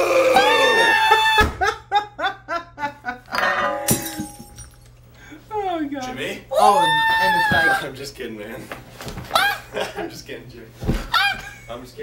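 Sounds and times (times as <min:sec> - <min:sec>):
glass breaking crash: 0:03.4 - 0:04.9.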